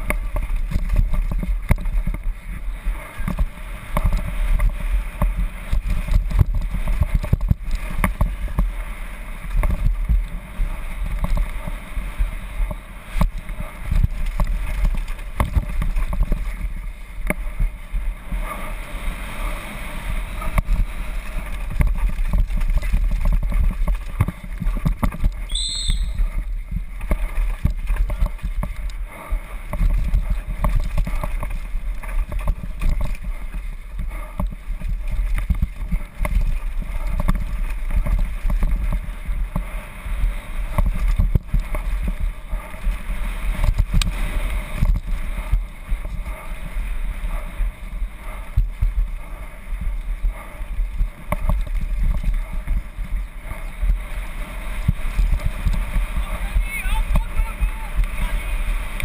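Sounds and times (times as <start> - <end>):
bike rattling and knocking: 0.0 - 8.8, 9.4 - 18.6, 20.2 - 46.8, 47.4 - 58.5
wind rushing over microphone: 0.0 - 59.0
brief high squeal: 25.5 - 26.2.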